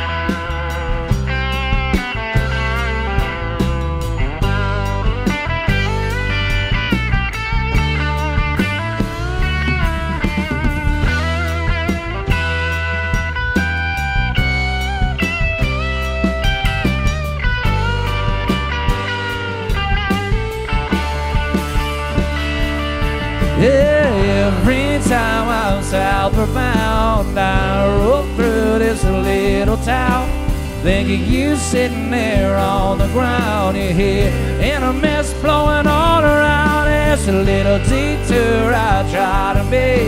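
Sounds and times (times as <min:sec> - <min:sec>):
bass guitar: 0:00.0 - 0:40.0
drums: 0:00.0 - 0:40.0
electric guitar lead with bends: 0:00.0 - 0:40.0.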